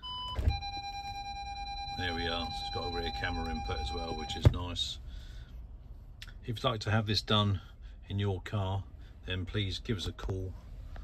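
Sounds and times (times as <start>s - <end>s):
two-pitch beep: 0.0s - 4.5s
continuous parking sensor tone: 0.0s - 5.0s.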